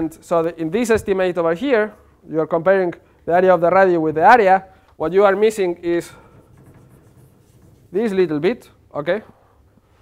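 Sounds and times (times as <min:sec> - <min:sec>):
chalk scratching on blackboard: 0:06.2 - 0:08.2.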